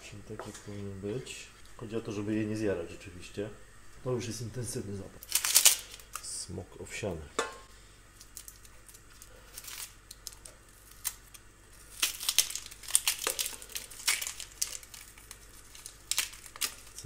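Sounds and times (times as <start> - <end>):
onion skin crackling and tearing: 5.2 - 6.4, 8.1 - 17.0.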